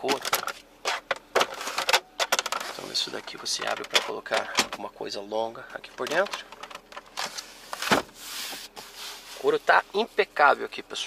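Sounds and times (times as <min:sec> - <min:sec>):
hand rubbing leather seat: 0:07.4 - 0:10.3.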